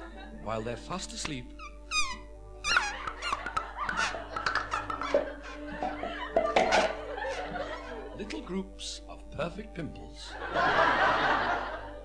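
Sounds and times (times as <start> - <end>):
light backing music: 0.0 - 12.0
little squeaks and pops: 1.5 - 5.3
comic wavering squeak: 1.6 - 4.3.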